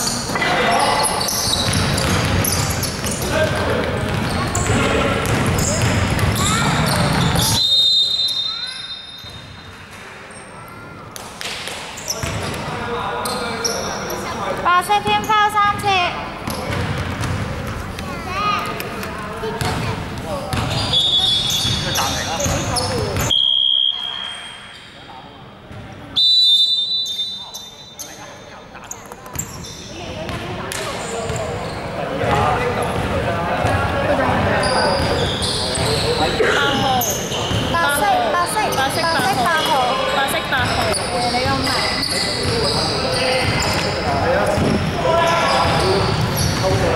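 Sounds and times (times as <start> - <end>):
players' voices: 0.0 - 46.9
basketball bouncing on court: 1.6 - 7.6, 11.4 - 12.7, 15.7 - 18.2, 19.6 - 23.3, 30.1 - 31.5, 43.4 - 43.9
referee's whistle blast: 7.4 - 9.3, 23.3 - 24.7, 26.2 - 27.9.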